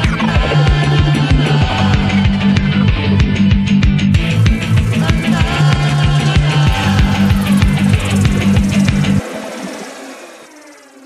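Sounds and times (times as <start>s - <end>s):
rock band music: 0.0s - 9.2s
ringing cymbals and sustained tones: 4.2s - 11.0s.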